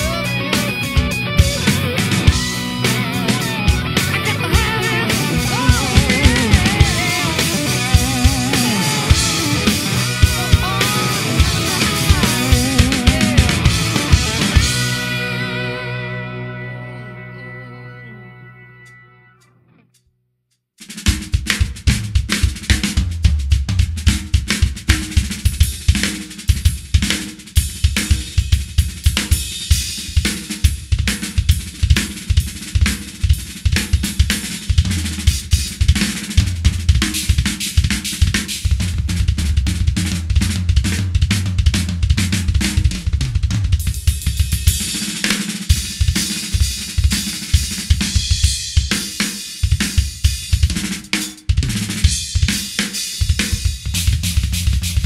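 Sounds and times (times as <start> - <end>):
drum solo: 0.0 - 15.8, 20.8 - 55.0
rock backing track: 0.0 - 19.8, 20.8 - 55.0.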